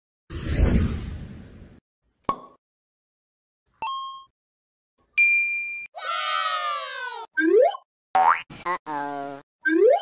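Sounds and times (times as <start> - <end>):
bright ding: 5.2 - 5.9.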